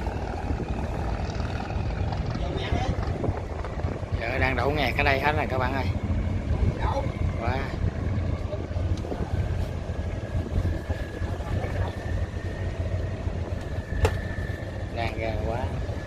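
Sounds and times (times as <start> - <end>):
boat diesel engines rumbling: 0.0 - 16.0.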